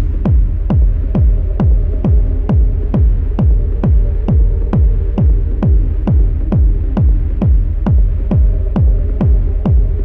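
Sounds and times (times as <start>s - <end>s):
deep kick drum: 0.0s - 10.0s
low bass hum: 0.0s - 10.0s.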